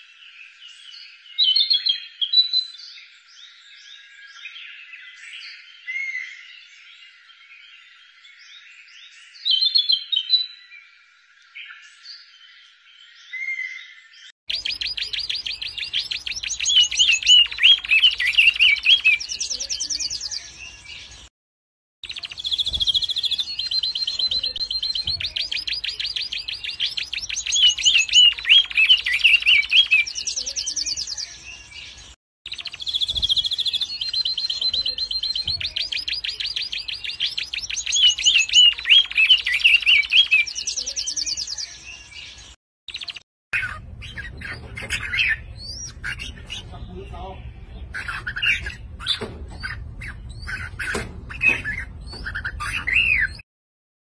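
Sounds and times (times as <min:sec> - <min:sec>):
ibis calling: 0:14.5 - 0:21.1, 0:22.0 - 0:53.4.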